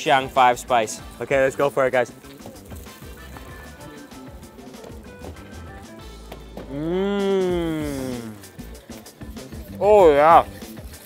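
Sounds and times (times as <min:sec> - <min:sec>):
speech: 0:00.0 - 0:02.1, 0:09.7 - 0:10.5
soft instrumental background music: 0:00.0 - 0:11.0.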